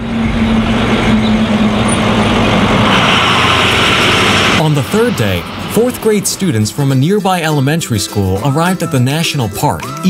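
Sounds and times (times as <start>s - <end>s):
bus engine and road noise: 0.0s - 10.0s.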